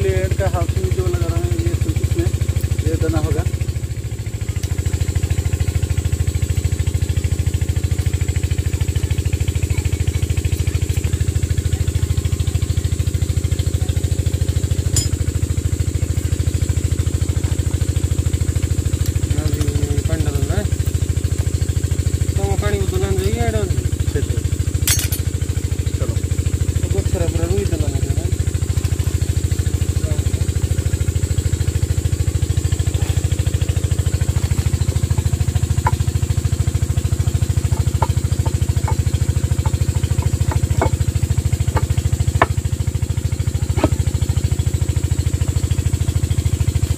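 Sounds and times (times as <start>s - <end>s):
engine droning: 0.0s - 46.9s.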